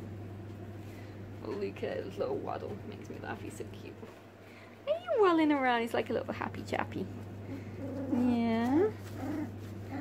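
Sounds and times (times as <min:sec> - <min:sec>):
puppy whining: 0:07.4 - 0:10.0.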